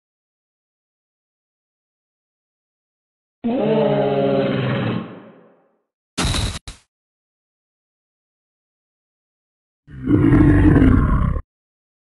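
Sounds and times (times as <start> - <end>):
dinosaur roar: 3.4 - 5.4, 9.9 - 11.5.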